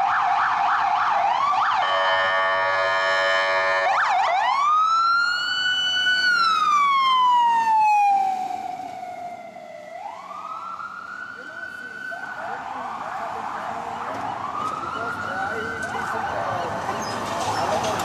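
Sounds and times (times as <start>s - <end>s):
ambulance siren: 0.0s - 18.0s
ambulance horn blast: 1.7s - 4.1s.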